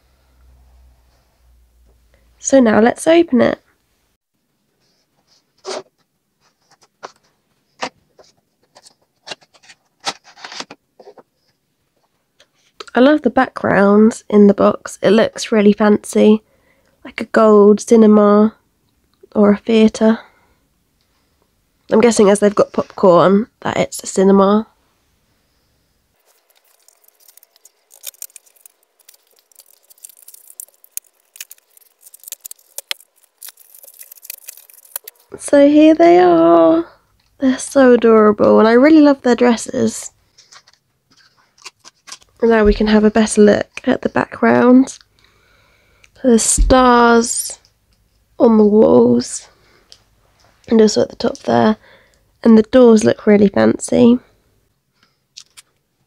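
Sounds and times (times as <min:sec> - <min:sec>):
plastic packaging crackling: 0:26.2 - 0:35.4, 0:40.4 - 0:42.9.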